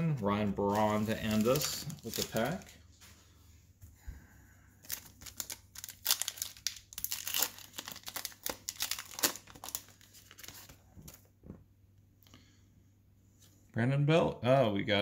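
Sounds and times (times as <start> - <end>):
foil wrapper tearing and crinkling: 0.7 - 2.7, 4.8 - 10.7.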